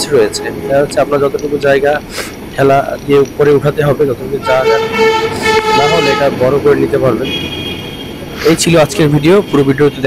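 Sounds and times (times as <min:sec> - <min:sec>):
horn steady note: 0:00.0 - 0:01.3, 0:04.4 - 0:06.4
man's voice: 0:00.0 - 0:07.3, 0:08.4 - 0:10.0.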